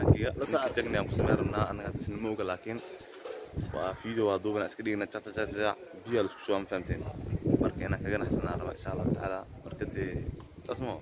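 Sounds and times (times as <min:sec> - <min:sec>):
man speaking close to microphone: 0:00.0 - 0:02.9, 0:03.6 - 0:11.0.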